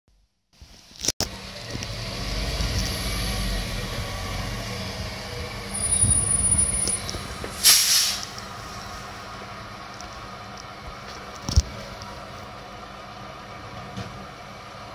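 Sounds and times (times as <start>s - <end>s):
diesel truck engine rumbling: 1.3s - 14.9s
brake squeal: 1.5s - 9.0s
air brake hiss: 7.5s - 8.8s.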